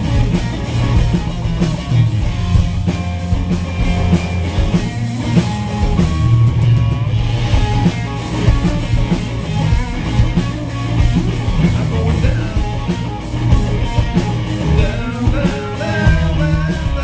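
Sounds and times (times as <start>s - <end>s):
drum kit: 0.0s - 17.0s
electric bass guitar: 0.0s - 17.0s
electric guitar: 0.0s - 17.0s.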